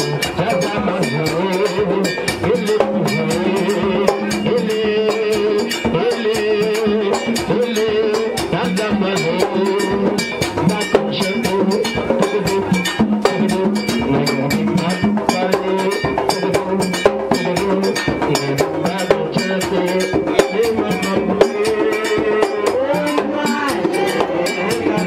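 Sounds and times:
fast steady drumming: 0.0 - 25.0
struck bell: 0.0 - 25.0
voices singing: 0.0 - 25.0.

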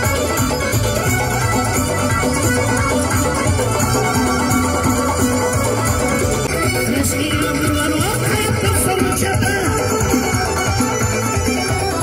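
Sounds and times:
hand-beaten frame drum: 0.0 - 12.0
live folk music: 0.0 - 12.0.

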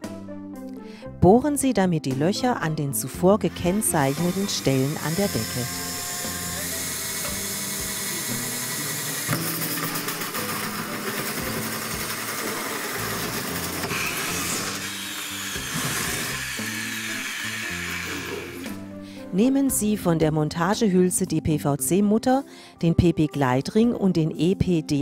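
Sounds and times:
background music: 0.0 - 25.0
drill hole saw grinding: 3.4 - 18.9.

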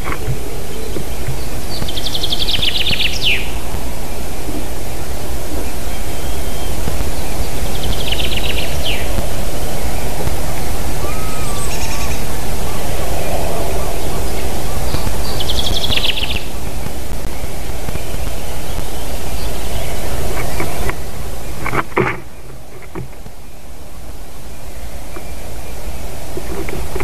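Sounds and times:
chaffinch singing: 0.0 - 21.8.

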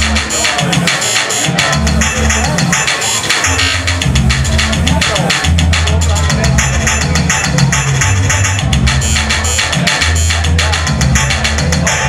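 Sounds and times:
heavy bass line: 0.0 - 12.0
high percussion beat: 0.0 - 12.0.

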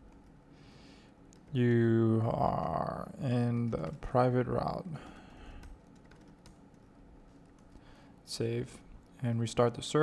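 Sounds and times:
typing on computer keyboard: 5.0 - 7.8.

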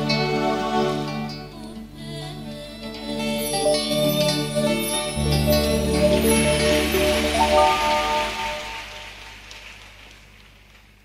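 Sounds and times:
faint hiss: 1.7 - 10.8
live band held notes: 3.1 - 9.8.

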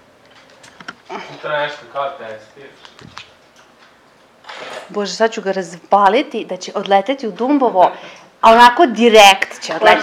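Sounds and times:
woman speaking: 4.9 - 10.0.

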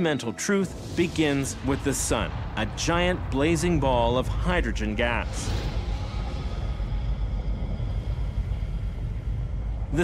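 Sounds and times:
deep rumbling drone: 0.7 - 10.0.

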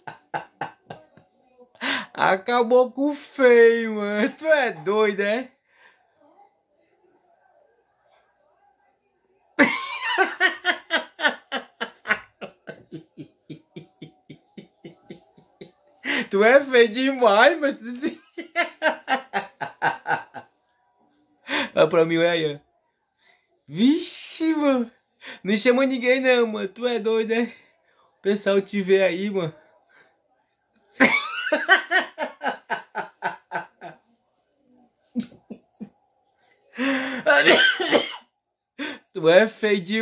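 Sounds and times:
man laughing: 9.6 - 15.5, 17.9 - 20.4, 31.0 - 33.9.

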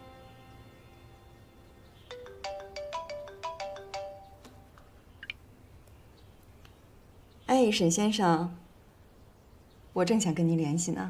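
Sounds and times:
phone ringtone chiming melody: 2.1 - 4.4.

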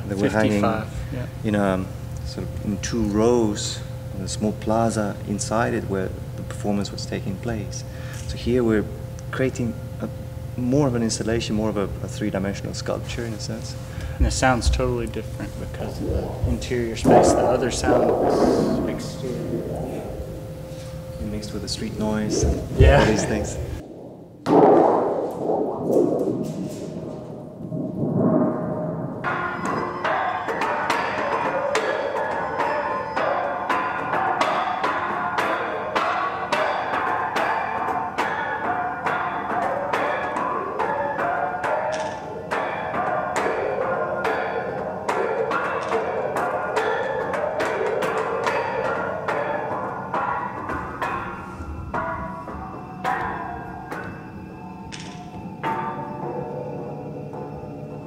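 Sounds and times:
low metallic ringing: 0.0 - 58.0.

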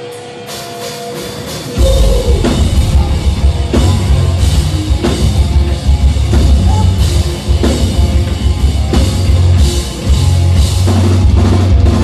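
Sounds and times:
rock band playing live: 0.0 - 12.0
cymbal crashes: 1.8 - 5.4.

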